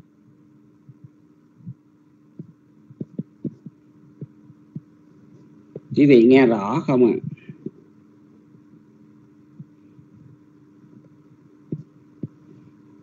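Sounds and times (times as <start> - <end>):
microphone line hum: 0.0 - 13.0
soft low thumps: 0.8 - 6.0, 9.5 - 12.8.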